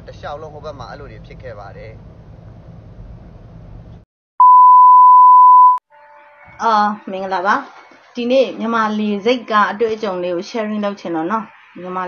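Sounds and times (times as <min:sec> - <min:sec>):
electronic censor bleep: 0:04.4 - 0:05.8.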